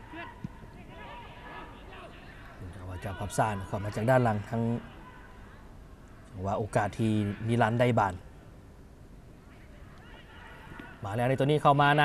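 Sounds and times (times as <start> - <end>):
football match broadcast: 0.0 - 8.6, 9.3 - 12.0.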